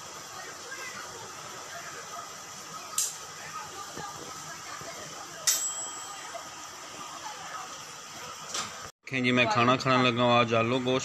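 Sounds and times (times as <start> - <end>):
sharp high clink: 5.4 - 6.4.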